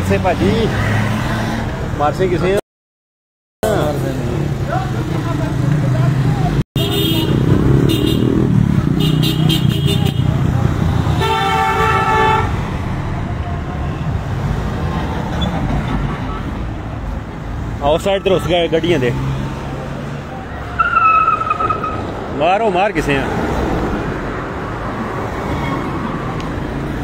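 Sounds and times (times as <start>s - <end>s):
car horn toots: 6.8s - 8.4s, 11.2s - 12.6s
long car horn blast: 11.2s - 12.6s.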